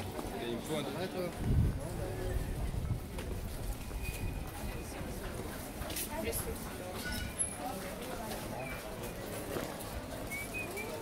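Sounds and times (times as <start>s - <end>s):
murmur of passers-by: 0.0s - 11.0s.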